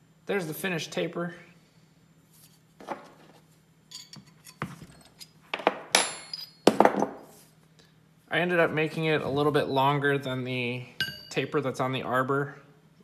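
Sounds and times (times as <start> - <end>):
steel parts clinking: 3.9 - 5.4, 6.0 - 6.7, 11.0 - 11.4.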